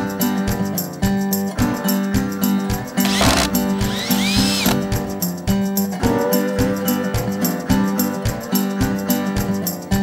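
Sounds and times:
acoustic guitar music: 0.0 - 6.2.

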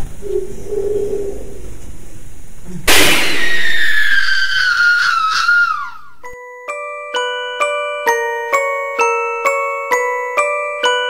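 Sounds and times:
high-pitched scream sliding down: 3.2 - 6.2.

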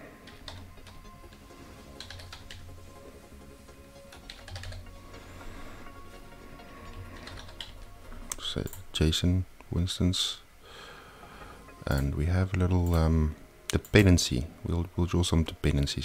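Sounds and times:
quiet background music: 0.0 - 16.0
typing on keyboard: 0.3 - 2.7, 4.0 - 5.1, 6.9 - 7.8.

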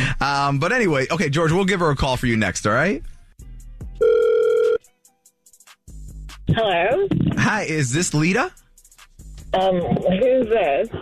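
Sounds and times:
telephone ringback tone: 4.0 - 4.8.

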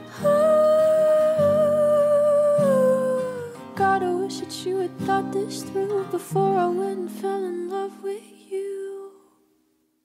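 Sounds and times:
woman singing pop vocal: 0.0 - 9.4.

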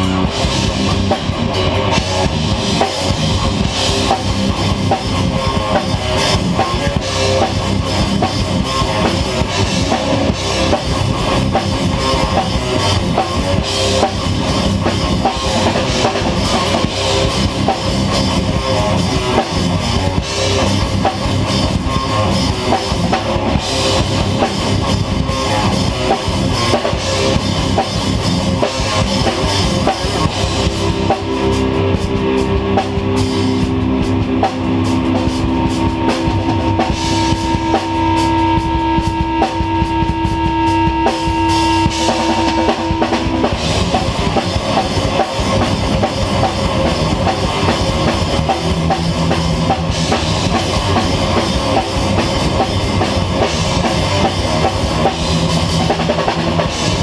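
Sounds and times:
rock band playing loud: 0.0 - 57.0.

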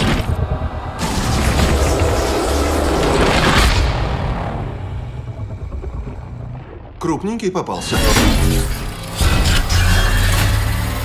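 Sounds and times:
low rumble: 0.0 - 7.6.

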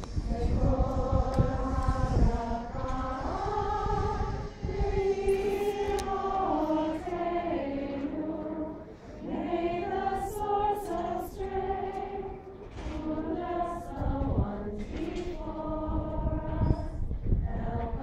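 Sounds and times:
women singing unaccompanied: 0.1 - 18.0.

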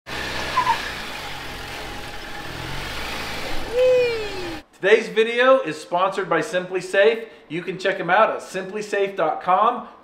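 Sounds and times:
car engine running: 0.1 - 4.6
person calling out: 3.7 - 4.6.

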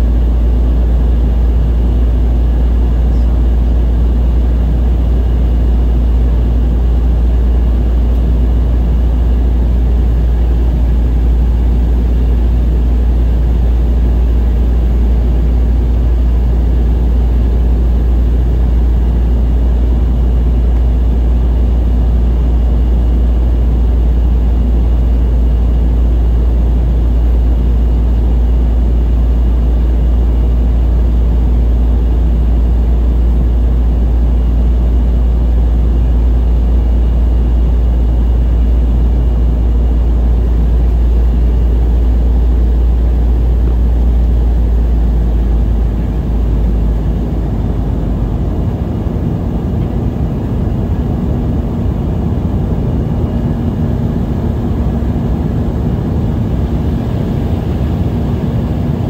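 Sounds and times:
airplane cabin engine rumble: 0.0 - 59.0
faint high engine whine: 0.0 - 59.0.

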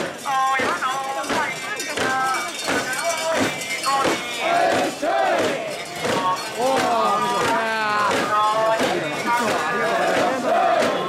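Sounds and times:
crowd shouting rhythmic chant: 0.0 - 11.0.

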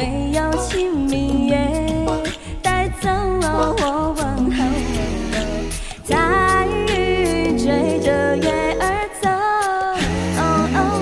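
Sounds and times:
woman singing folk song: 0.0 - 11.0.

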